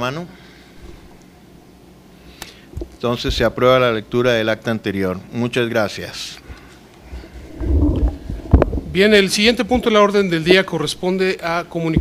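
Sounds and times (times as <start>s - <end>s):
microphone handling rumble: 7.0s - 9.9s
microphone thump: 7.1s - 9.1s.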